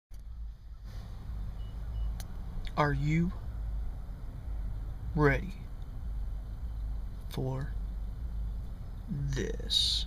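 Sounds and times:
short high beep: 0:01.6 - 0:02.2.

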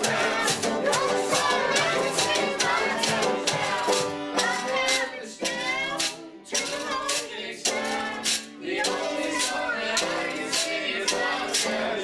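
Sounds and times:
live folk band playing: 0:00.0 - 0:12.0
strummed shaker-like beat: 0:00.0 - 0:12.0
voices singing: 0:00.0 - 0:12.0.

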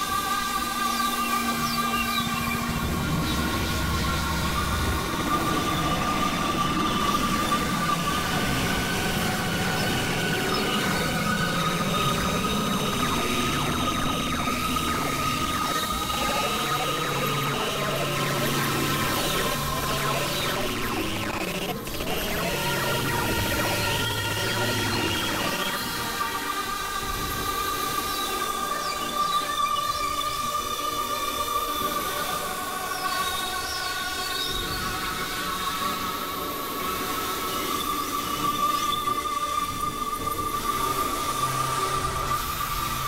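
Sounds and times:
sustained high synthesizer tones: 0:00.1 - 0:43.0
noisy rumbling texture: 0:01.4 - 0:29.2
faint gliding tones: 0:02.6 - 0:28.0.

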